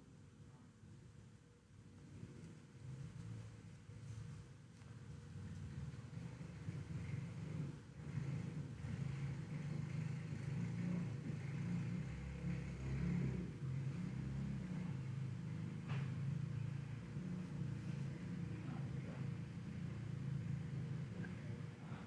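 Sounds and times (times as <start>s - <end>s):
faint low rumble: 0.0s - 22.0s.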